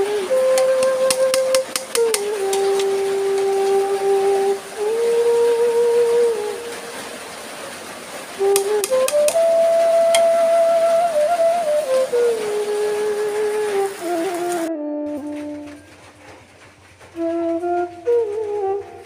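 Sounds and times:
slow flute-like melody: 0.0s - 19.0s.

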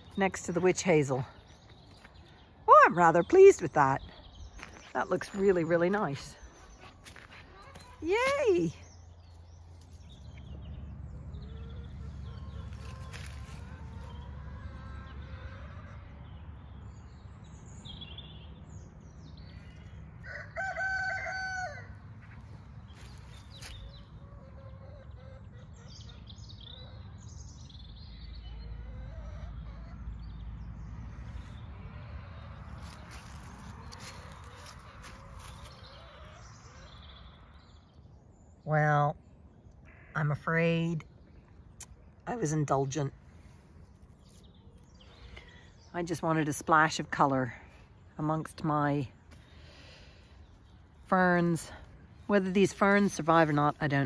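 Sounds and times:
small birds chirping: 0.0s - 20.8s, 21.6s - 54.0s
rooster crowing: 20.2s - 22.0s.

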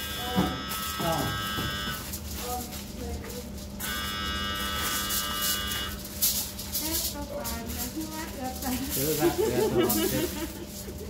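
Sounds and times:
electric buzz: 0.0s - 2.2s, 3.8s - 6.8s.

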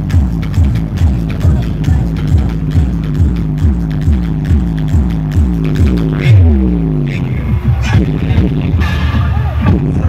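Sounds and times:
falling bass sweep: 0.0s - 10.0s
heavy bass kick: 0.0s - 10.0s
loud dance music: 0.0s - 10.0s.

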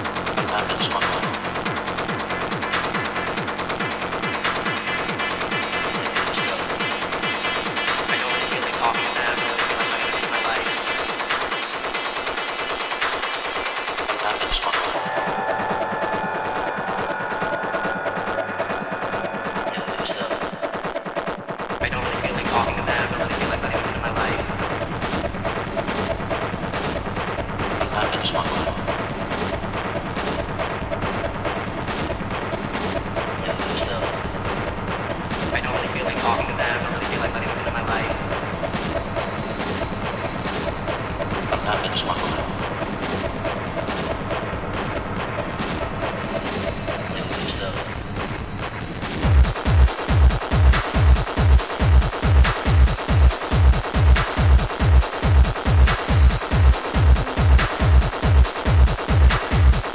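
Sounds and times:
distorted techno percussion hits: 0.0s - 59.9s
heavy bass: 0.0s - 59.9s
sustained synth tones: 13.9s - 59.9s.

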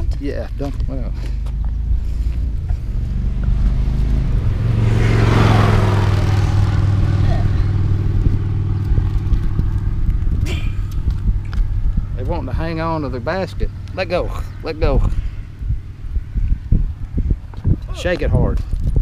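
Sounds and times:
engine rumbling: 0.0s - 19.0s
vehicle passing: 1.0s - 17.5s.

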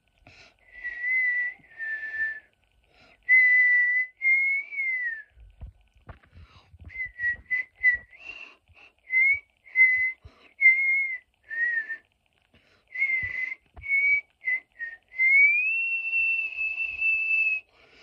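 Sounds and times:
person whistling a tune: 0.7s - 2.5s, 3.3s - 5.3s, 6.8s - 12.0s, 12.9s - 17.7s.

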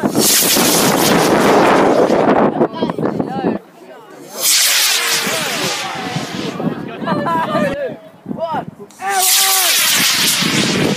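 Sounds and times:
rocket motor hissing: 0.0s - 2.4s, 4.2s - 6.7s, 8.9s - 10.9s.

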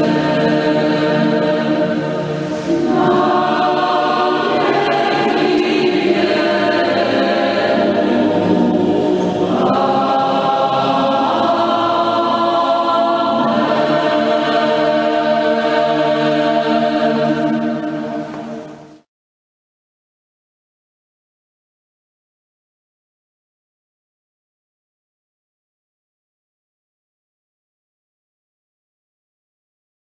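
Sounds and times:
choir singing sustained chords: 0.0s - 19.1s.

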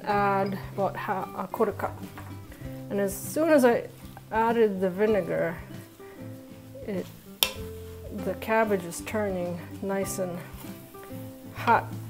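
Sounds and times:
soft background music: 0.0s - 12.0s
wooden spoon stirring cabbage in pot: 0.7s - 12.0s.

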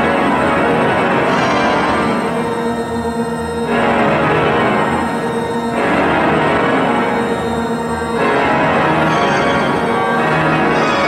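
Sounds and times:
church organ chords with electronics: 0.0s - 11.0s.

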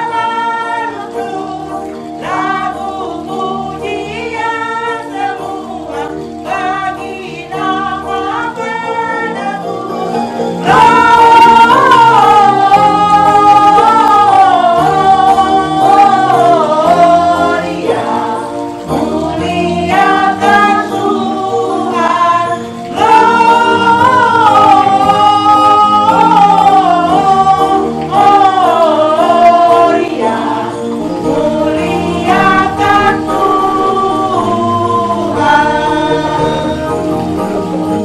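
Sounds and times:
instrumental backing: 0.0s - 38.0s
women singing together: 0.0s - 38.0s.

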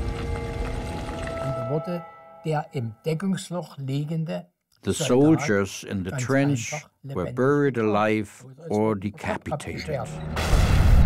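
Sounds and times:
held music notes: 0.0s - 2.8s
man's voice: 4.8s - 10.2s.

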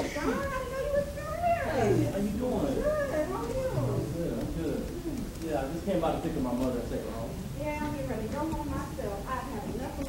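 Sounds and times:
person speaking: 1.7s - 5.4s.

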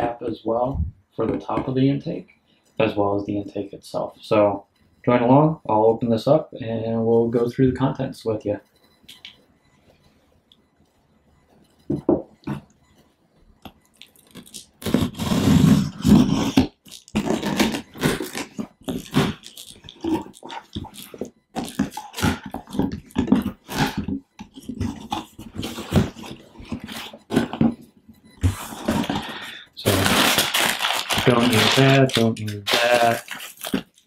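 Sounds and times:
knife slitting packing tape: 14.2s - 19.8s, 29.9s - 34.0s
packing paper crinkling: 28.5s - 34.0s.

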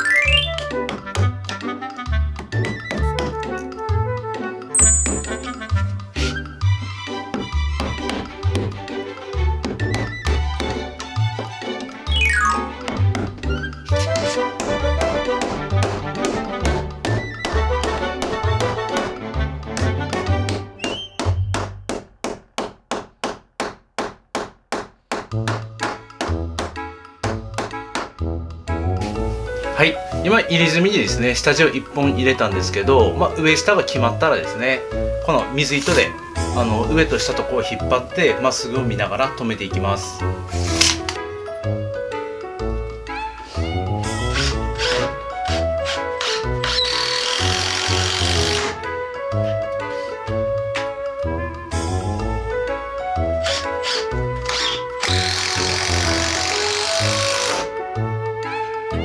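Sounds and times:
background music: 0.0s - 22.6s, 24.8s - 59.0s
hammer driving nails into wood: 12.9s - 28.2s, 40.6s - 41.2s, 44.1s - 48.8s, 53.4s - 57.7s
power driver driving screw into wood: 40.6s - 41.2s, 44.0s - 48.8s, 53.4s - 57.7s.

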